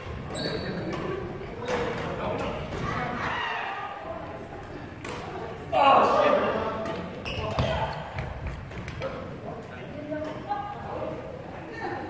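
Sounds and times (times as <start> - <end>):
rackets hitting shuttlecock: 0.7 - 2.9, 5.0 - 5.3.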